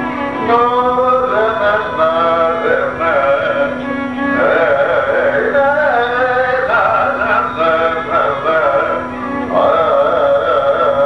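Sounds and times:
steady drone: 0.0 - 11.0
man singing with ornaments: 0.3 - 11.0.

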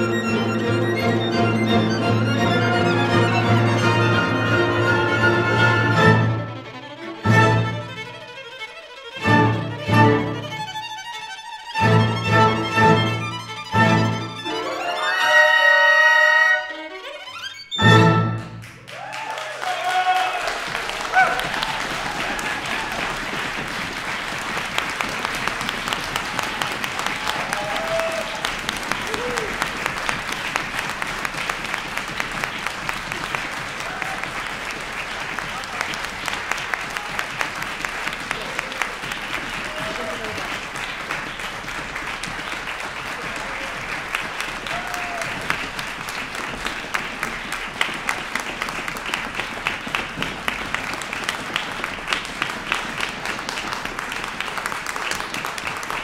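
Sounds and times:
audience applauding: 0.0 - 8.6, 12.0 - 17.1, 18.1 - 56.0.

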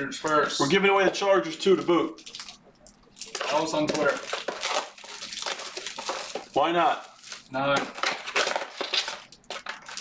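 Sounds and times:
packaging crinkling: 1.7 - 10.0.

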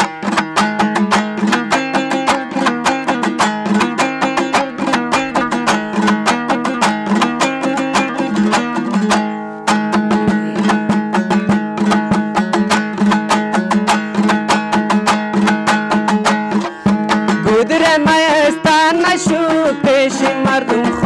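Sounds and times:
lute strummed rapidly: 0.0 - 21.0.

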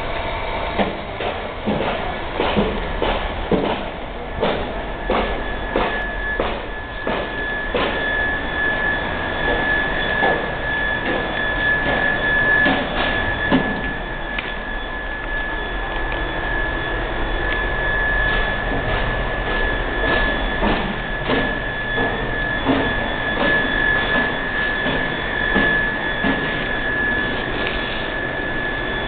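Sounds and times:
high-pitched whine: 0.0 - 29.0
low hum: 4.0 - 29.0.

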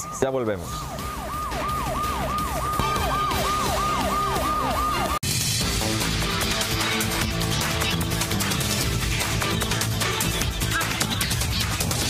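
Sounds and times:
siren falling wail: 0.0 - 5.2.

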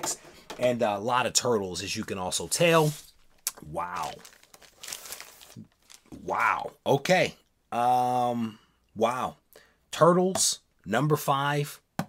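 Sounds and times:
plastic packaging crinkling: 2.2 - 6.3.

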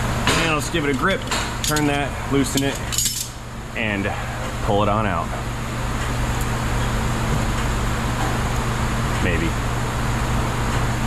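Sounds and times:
low mechanical hum: 0.0 - 11.0.

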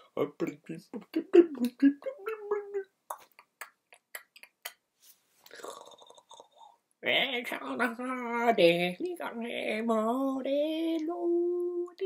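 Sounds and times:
man making garbled vocal sounds: 0.0 - 4.8.

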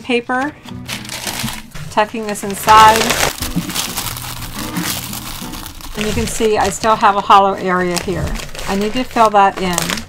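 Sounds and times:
quiet background music: 0.0 - 10.0
packing paper crinkling: 0.4 - 10.0.

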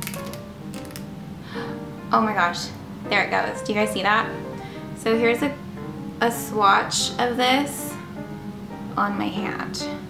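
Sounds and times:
twist pen clicks: 0.0 - 1.0
background music: 0.0 - 10.0.

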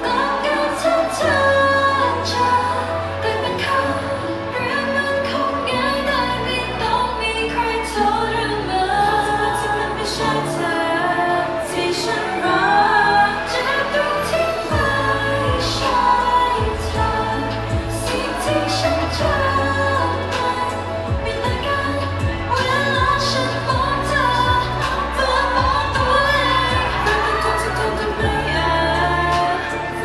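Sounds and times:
pop backing track with bass: 0.0 - 30.0
woman singing into microphone: 0.0 - 30.0.

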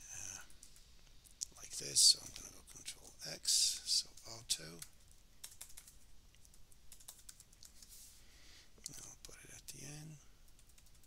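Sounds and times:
keyboard typing: 4.1 - 7.9, 10.5 - 11.0.

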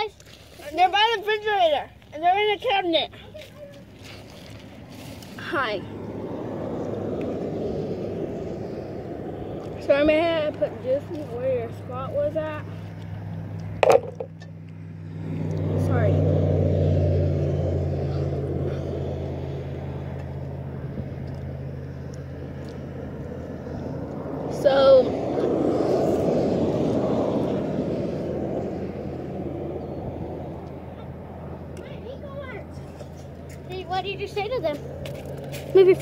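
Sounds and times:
vehicles passing: 0.0 - 36.0.

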